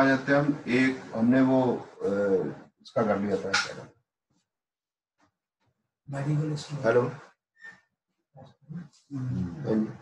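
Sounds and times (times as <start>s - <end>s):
man speaking: 0.0s - 3.9s, 6.1s - 7.3s, 9.1s - 10.0s.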